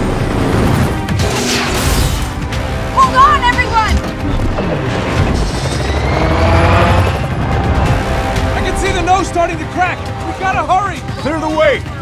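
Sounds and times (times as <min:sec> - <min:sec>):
dramatic trailer music: 0:00.0 - 0:12.0.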